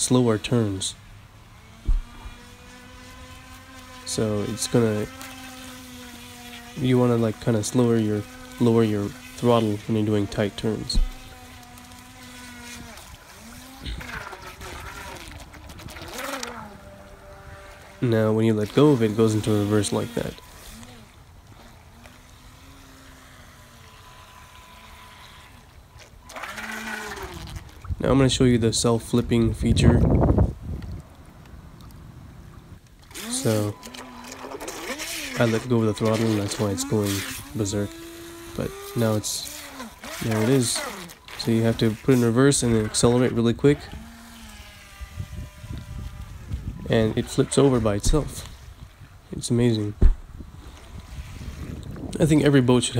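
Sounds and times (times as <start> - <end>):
model boat motor whining: 0.0 - 30.6, 32.4 - 52.9.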